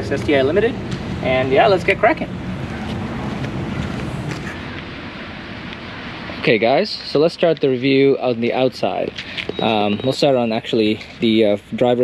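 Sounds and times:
distant traffic: 0:00.0 - 0:12.0.

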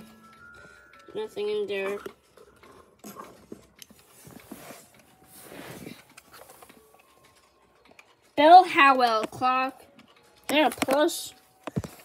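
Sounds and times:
soft rustling: 0:04.0 - 0:06.9
light clicks and taps: 0:06.0 - 0:12.0.

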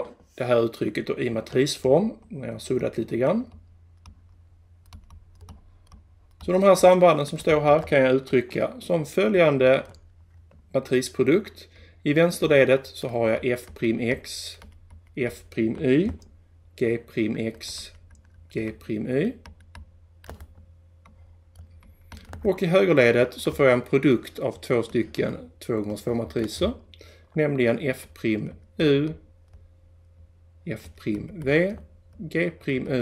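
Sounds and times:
low steady hum: 0:00.0 - 0:33.0.

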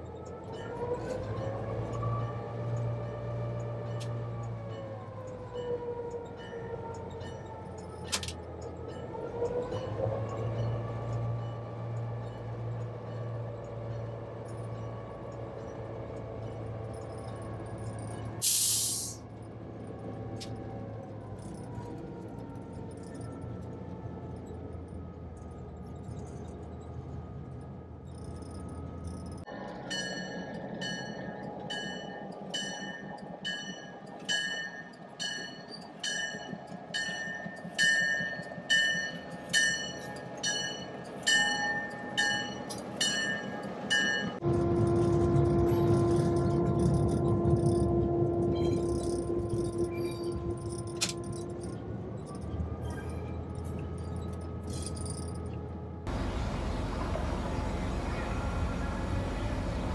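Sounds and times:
diesel locomotive engine running: 0:00.0 - 0:59.9
locomotive bell ringing: 0:28.2 - 0:55.5.

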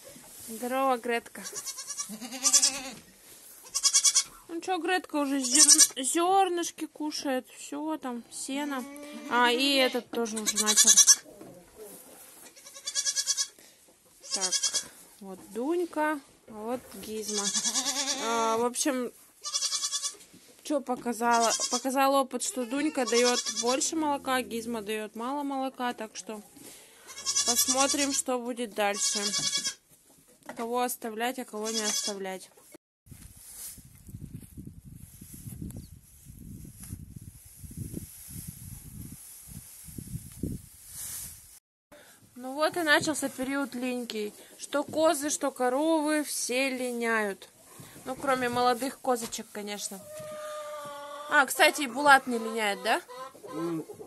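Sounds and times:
dry hay rustling: 0:00.0 - 0:04.4, 0:10.6 - 0:13.5, 0:33.1 - 0:41.6, 0:48.1 - 0:50.5
goats bleating: 0:01.4 - 0:03.0, 0:08.8 - 0:11.3, 0:17.3 - 0:18.4, 0:22.5 - 0:23.9, 0:27.0 - 0:28.2
wind buffeting microphone: 0:33.1 - 0:40.8.

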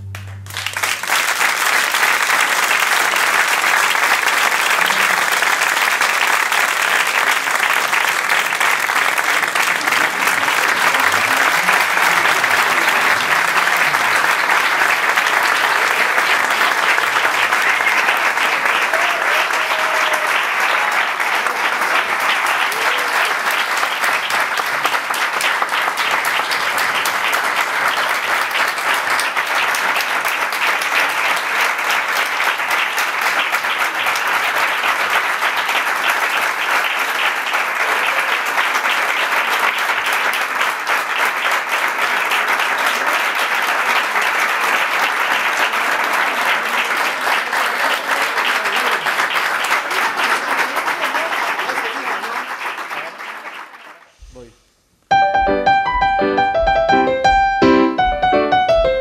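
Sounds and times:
audience applauding: 0:00.0 - 0:54.5.

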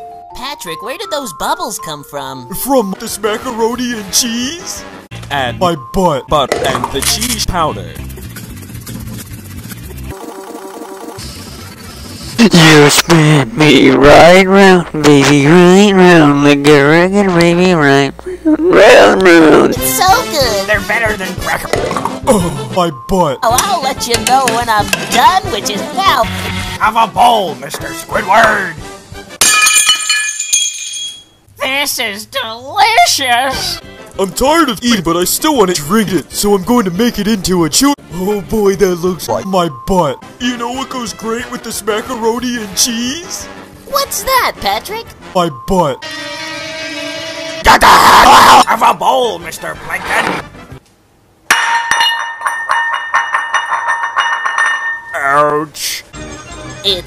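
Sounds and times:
ceramic bowl smashing on tiles: 0:29.4 - 0:31.4, 0:51.5 - 0:55.2
glass shards tinkling: 0:29.4 - 0:31.4, 0:51.6 - 0:55.2
glass shattering: 0:29.4 - 0:31.4, 0:51.5 - 0:55.2
ringing clinks of pieces: 0:29.5 - 0:31.4, 0:51.5 - 0:55.2.

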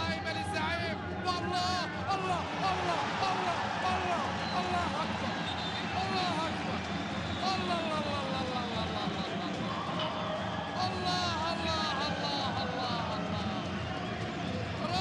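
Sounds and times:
stadium crowd noise: 0:00.0 - 0:15.0
voices shouting and cheering: 0:00.0 - 0:15.0.

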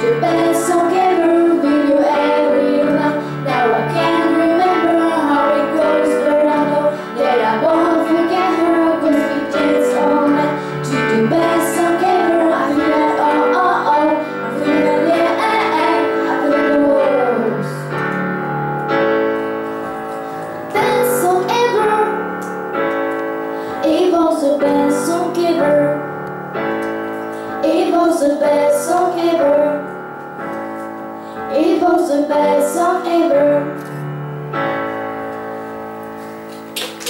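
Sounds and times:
girls singing pop song: 0:00.0 - 0:18.0, 0:20.7 - 0:22.5, 0:23.6 - 0:26.2, 0:27.4 - 0:30.0, 0:31.4 - 0:33.8
piano chords: 0:00.0 - 0:37.0
applause: 0:36.7 - 0:37.0.

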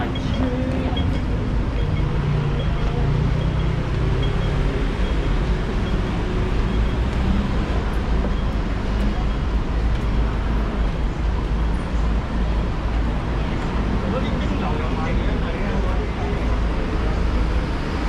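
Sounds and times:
indistinct voices: 0:00.0 - 0:09.6
traffic rumble: 0:00.0 - 0:18.0.

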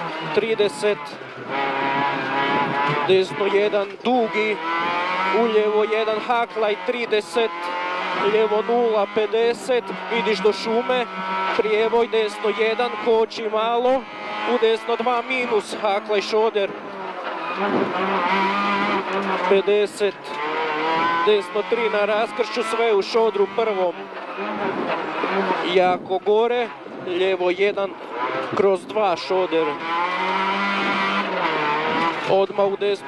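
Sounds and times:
rally car engine running hard: 0:00.0 - 0:33.0.

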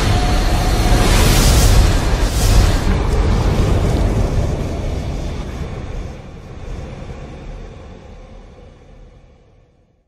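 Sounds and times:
deep rumbling boom: 0:00.0 - 0:08.0.

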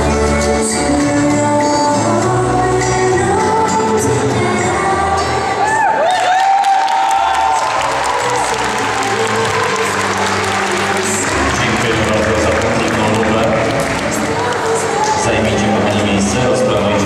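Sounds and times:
latin dance music: 0:00.0 - 0:17.0
spectators shouting and whooping: 0:05.5 - 0:11.6
crowd cheering: 0:05.6 - 0:15.7.

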